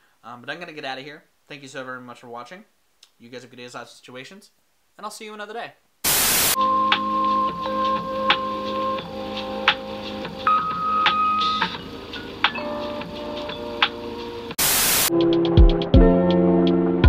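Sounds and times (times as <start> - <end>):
static hiss: 0.0 - 15.1.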